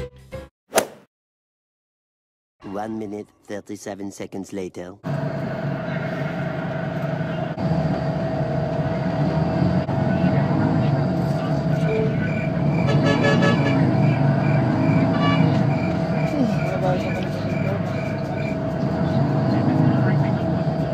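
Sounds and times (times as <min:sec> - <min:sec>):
bus engine and road noise: 0:05.0 - 0:20.9.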